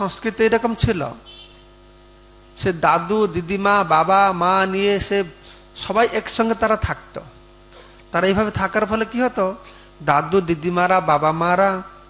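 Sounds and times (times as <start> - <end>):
man speaking: 0.0 - 1.6, 2.6 - 7.4, 8.1 - 12.0
electrical mains hum: 0.0 - 12.0.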